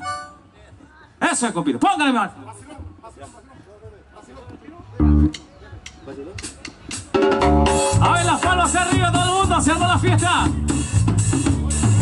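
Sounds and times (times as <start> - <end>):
live rock band playing: 6.4 - 12.0.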